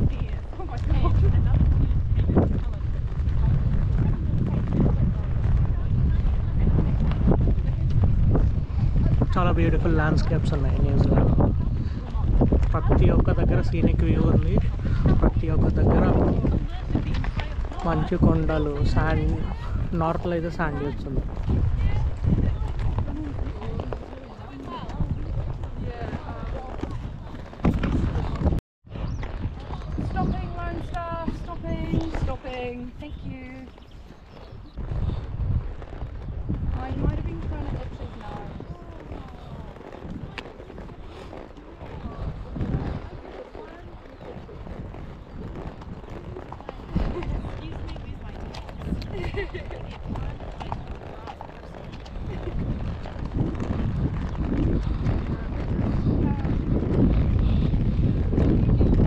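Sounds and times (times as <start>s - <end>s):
horse hooves clopping on gravel: 0.0s - 59.0s
rider movement rumbling on microphone: 0.0s - 59.0s.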